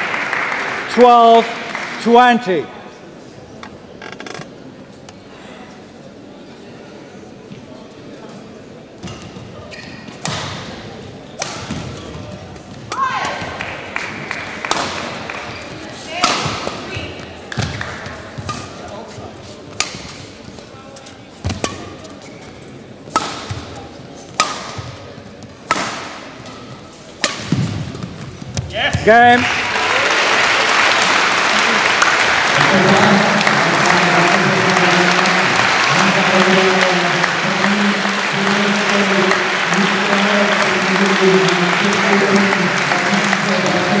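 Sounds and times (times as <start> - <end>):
racket striking shuttlecock: 11.4 - 12.1, 14.6 - 15.3, 16.1 - 18.9, 19.7 - 20.2, 23.1 - 23.7, 24.3 - 25.0, 25.6 - 28.0.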